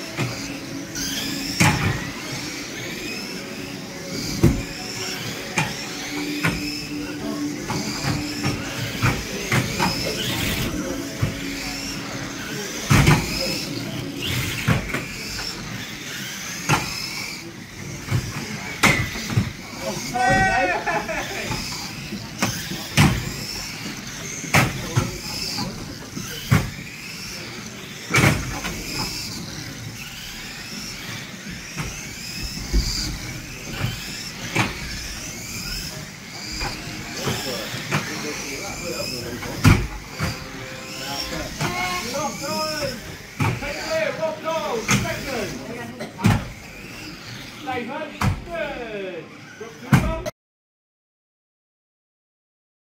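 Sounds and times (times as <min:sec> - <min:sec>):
electric motors whining: 0:00.0 - 0:50.3
toy cars knocking together: 0:04.1 - 0:20.6, 0:21.4 - 0:40.5, 0:41.2 - 0:43.9, 0:44.8 - 0:47.5.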